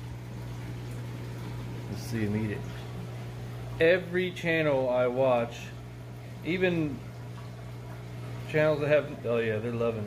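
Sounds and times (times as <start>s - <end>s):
aquarium water bubbling: 0.0s - 10.0s.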